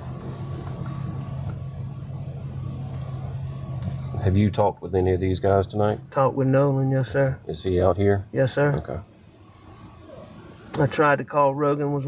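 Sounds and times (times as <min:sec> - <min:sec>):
car engine hum from cabin: 0:00.0 - 0:12.0.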